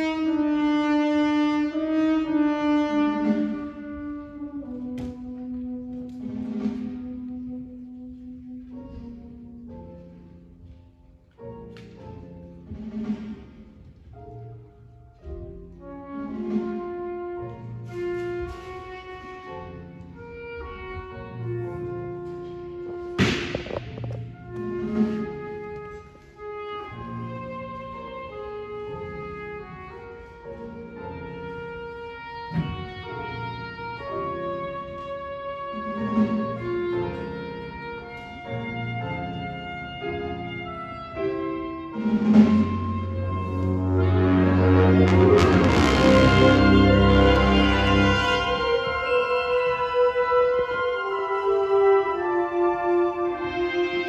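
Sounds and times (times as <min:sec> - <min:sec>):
concert band brass and woodwind chords: 0:00.0 - 0:10.8, 0:15.7 - 0:54.0
concert band playing: 0:41.9 - 0:51.2.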